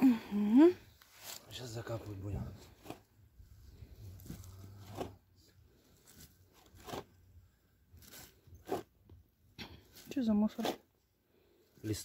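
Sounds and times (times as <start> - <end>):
soil crunching and scraping: 1.0 - 10.9.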